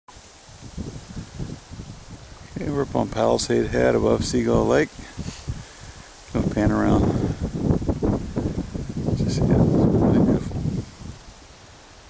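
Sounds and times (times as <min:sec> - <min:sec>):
wind gusting across microphone: 0:00.1 - 0:12.0.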